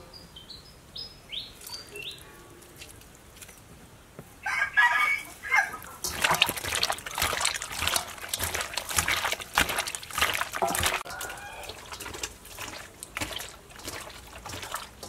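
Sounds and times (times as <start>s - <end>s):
rooster crowing: 4.4s - 5.8s, 11.0s - 11.9s
wet squelching and sloshing: 5.3s - 15.0s.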